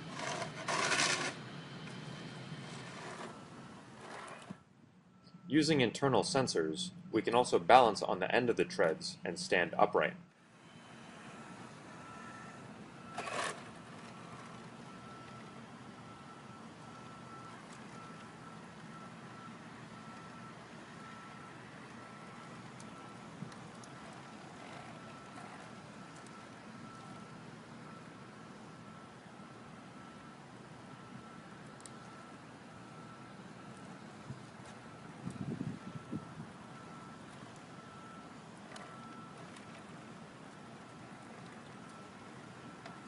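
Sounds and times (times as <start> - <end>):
electric motors whining: 21.2 - 27.3.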